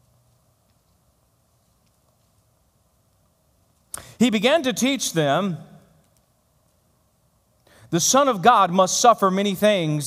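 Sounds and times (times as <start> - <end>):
man speaking: 4.2 - 5.8, 7.9 - 10.0.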